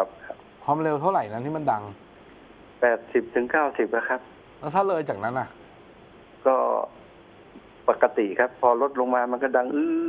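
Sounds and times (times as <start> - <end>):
man's voice over telephone: 2.8 - 5.6, 7.9 - 9.9.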